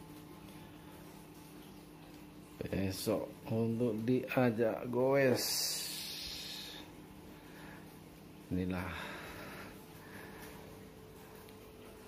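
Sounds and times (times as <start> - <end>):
faint low hum: 0.0 - 12.0
breathy hiss: 5.3 - 11.8.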